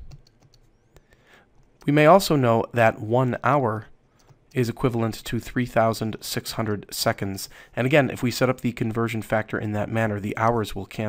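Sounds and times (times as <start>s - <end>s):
stylus tapping on screen: 0.0s - 1.9s.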